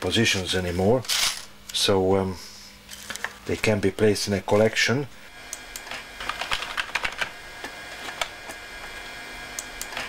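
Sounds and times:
keyboard typing: 6.2s - 7.3s.

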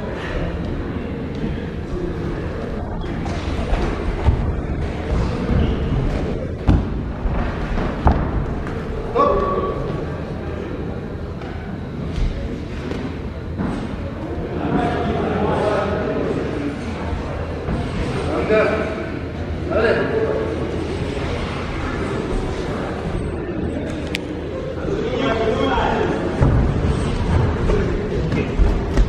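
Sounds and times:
crowd voices in sports hall: 0.0s - 29.0s.

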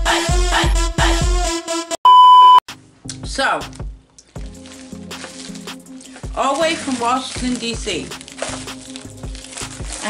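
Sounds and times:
electronic beep: 2.1s - 2.6s.

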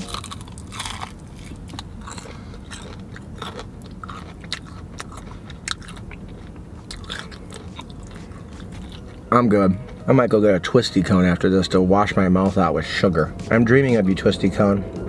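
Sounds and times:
crunchy chewing: 0.0s - 10.0s
low steady hum: 0.0s - 15.0s.

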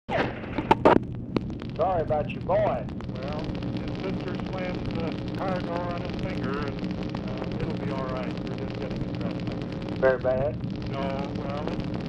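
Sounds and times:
electrical hum on phone line: 0.1s - 12.0s.

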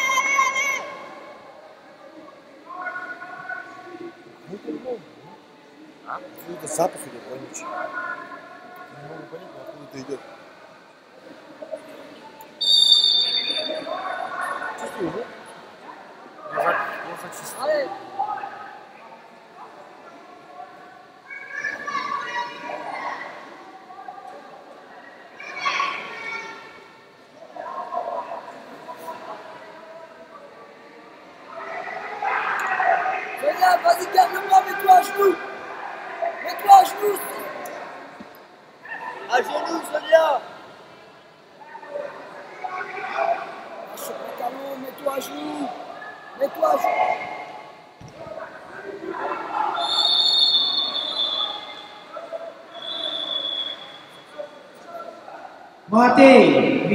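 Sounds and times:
sports hall noise: 0.0s - 56.9s
voices calling out: 12.5s - 19.0s, 31.4s - 40.8s, 41.5s - 55.6s
high whistle-like tone: 12.6s - 13.9s, 49.8s - 52.0s, 52.7s - 54.4s
people shouting: 49.2s - 51.8s.

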